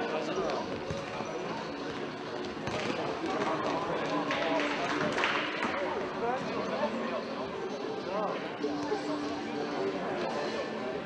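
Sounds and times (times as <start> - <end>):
people shouting and chattering: 0.0 - 11.0.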